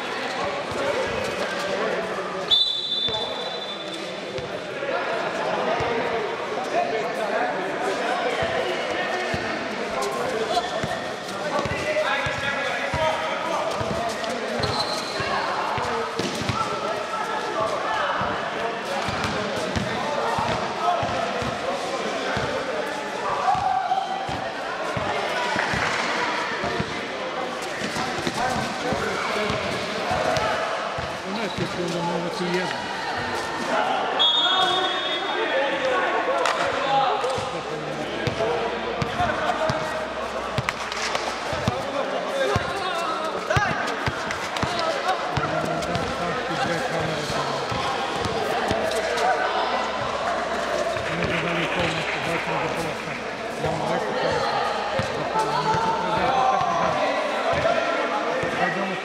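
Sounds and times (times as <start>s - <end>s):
players' voices: 0.0s - 59.0s.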